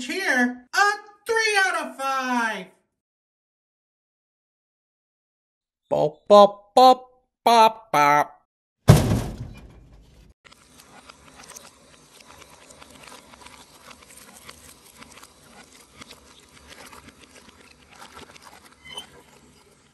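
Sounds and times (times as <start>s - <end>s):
loud thud: 8.9s - 10.0s
meat squishing through sausage stuffer: 10.5s - 19.9s.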